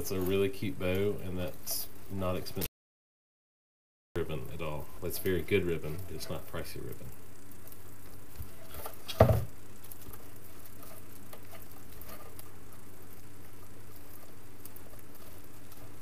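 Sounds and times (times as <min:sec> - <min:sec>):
steady low hum: 0:00.0 - 0:02.7, 0:04.2 - 0:16.0
faint rustling and ticks: 0:04.4 - 0:16.0
dull thump: 0:09.1 - 0:09.5.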